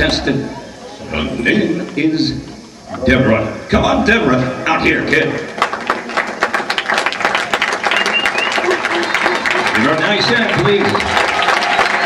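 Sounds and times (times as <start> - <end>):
voices: 0.0 - 5.5, 7.9 - 12.0
audience applauding: 5.1 - 12.0.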